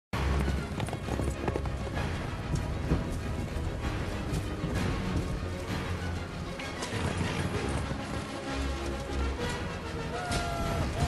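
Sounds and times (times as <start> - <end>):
film soundtrack music: 0.2 - 11.0
horse hooves clip-clopping: 0.2 - 11.0.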